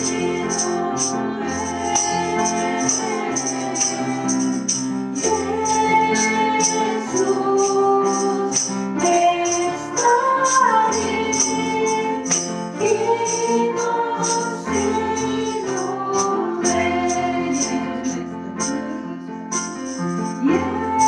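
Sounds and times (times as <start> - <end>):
voices singing a song: 0.0 - 18.9
instrumental accompaniment: 0.0 - 21.0
tambourine shaken: 0.0 - 21.0.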